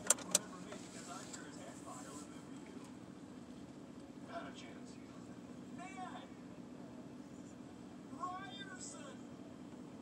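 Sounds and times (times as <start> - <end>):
faint muffled voices: 0.0 - 3.5
steady low hum: 0.0 - 10.0.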